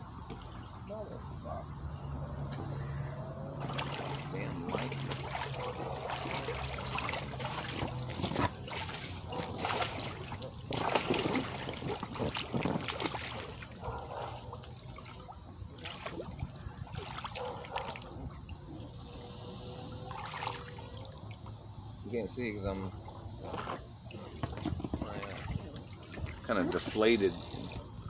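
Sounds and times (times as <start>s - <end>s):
water splashing in hot tub: 0.0s - 2.7s, 3.3s - 28.0s
low steady hum: 0.0s - 28.0s.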